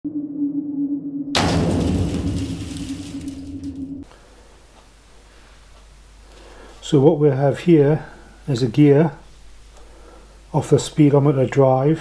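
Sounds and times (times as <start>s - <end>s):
steady low tone: 0.0s - 4.0s
loud hit: 1.4s - 4.1s.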